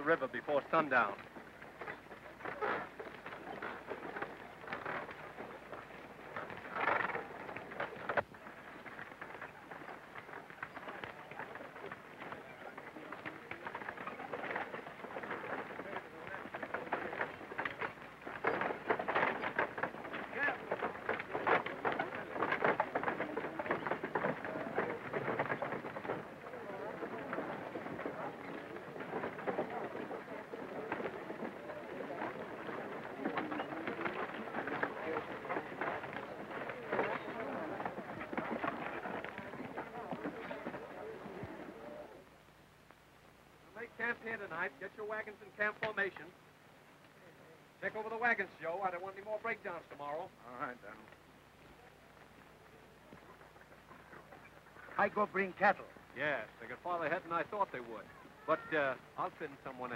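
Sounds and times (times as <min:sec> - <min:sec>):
wooden wagons rattling: 0:00.0 - 0:42.4, 0:43.6 - 0:46.5, 0:47.7 - 0:59.9
horses' hooves clattering: 0:00.0 - 0:59.9.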